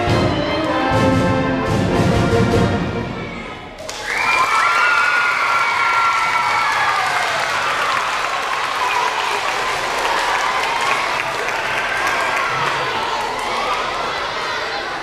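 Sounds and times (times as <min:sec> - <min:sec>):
brass band: 0:00.0 - 0:03.4
children cheering and shouting: 0:03.2 - 0:15.0
children applauding: 0:03.8 - 0:15.0.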